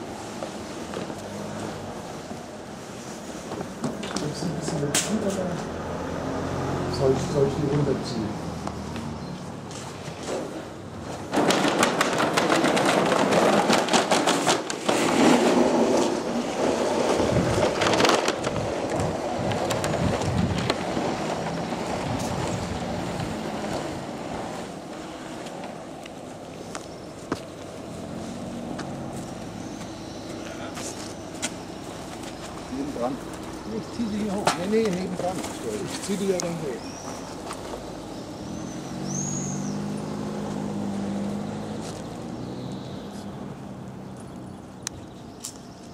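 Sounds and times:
rope net scraping over paving: 9.4 - 26.7, 27.4 - 38.1.

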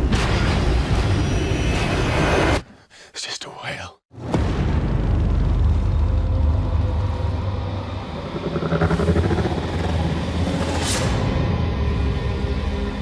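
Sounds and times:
loud deep rumble: 4.3 - 13.0.

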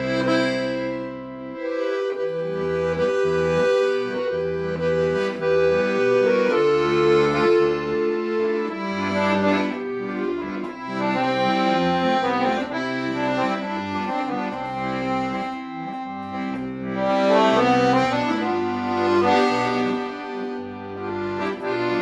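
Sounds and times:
piano accordion melody: 0.0 - 22.0.

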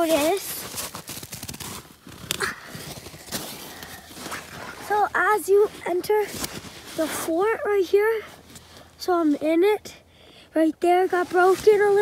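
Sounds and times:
footsteps crunching through snow: 0.0 - 7.4, 11.1 - 12.0
twigs crackling: 0.0 - 7.4.

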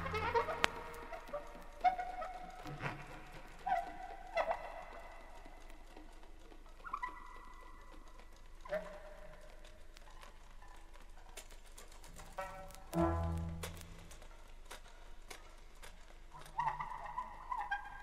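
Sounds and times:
faint tape hiss: 0.0 - 18.0.

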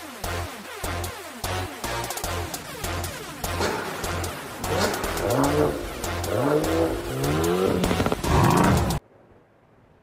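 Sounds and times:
car engine revving: 1.4 - 9.0.

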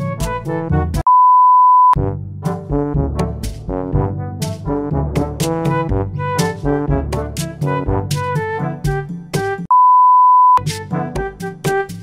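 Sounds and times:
background music: 0.0 - 1.0, 2.0 - 9.7, 10.6 - 12.0
electronic beep tone: 1.1 - 2.0, 9.7 - 10.6.

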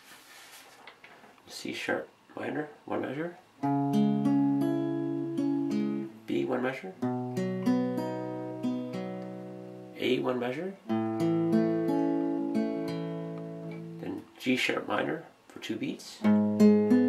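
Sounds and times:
acoustic guitar picking chords: 3.6 - 14.4, 16.2 - 17.0.

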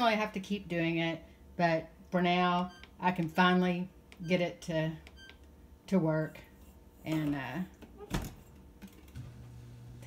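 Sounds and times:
dishwasher humming: 7.0 - 10.0.

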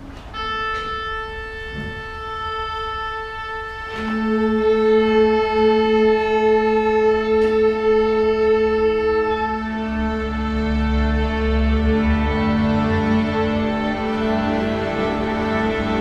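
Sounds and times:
string orchestra holding notes: 0.0 - 16.0.

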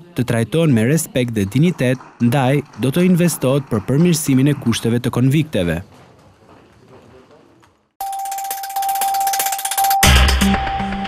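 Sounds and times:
steady high electronic tone: 8.0 - 11.0.

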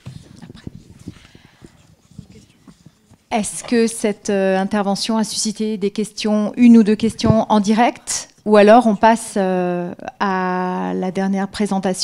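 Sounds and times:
soft irregular knocks and rustles: 0.0 - 3.9.

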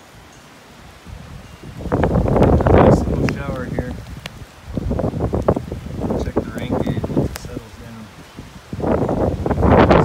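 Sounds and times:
heavy rain: 0.0 - 10.0
wind gusting through trees: 0.0 - 10.0
wind buffeting microphone: 0.9 - 10.0.

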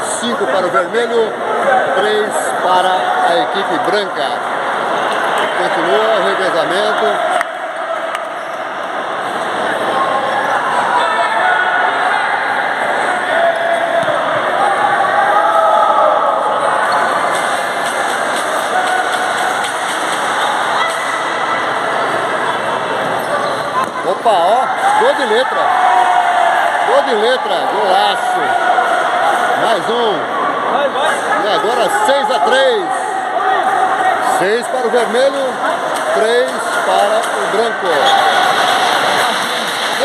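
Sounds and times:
spectators talking and shouting: 0.0 - 40.0.

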